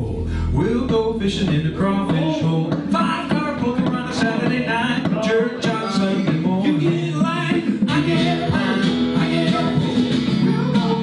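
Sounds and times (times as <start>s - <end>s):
acoustic guitars strumming: 0.0s - 11.0s
person singing: 0.0s - 11.0s.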